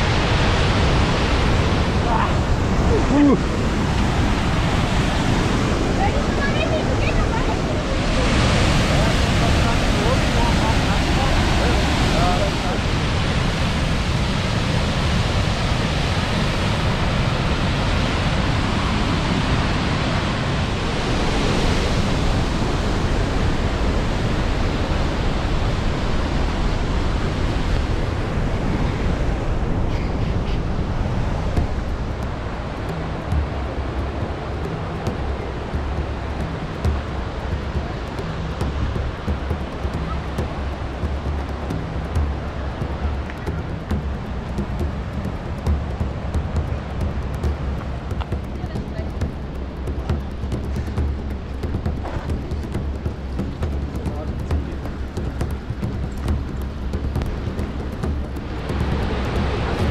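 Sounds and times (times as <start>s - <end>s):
waterfall roaring: 0.0s - 59.9s.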